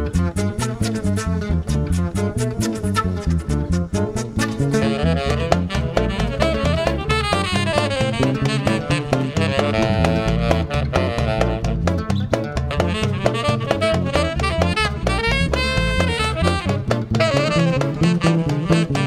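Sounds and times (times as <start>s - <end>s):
low bass line: 0.0s - 19.0s
saxophone melody: 0.0s - 19.0s
hand drum strokes: 2.5s - 19.0s.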